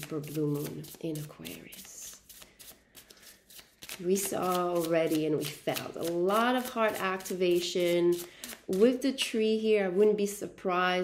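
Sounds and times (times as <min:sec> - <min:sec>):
cards being shuffled: 0:00.0 - 0:08.8.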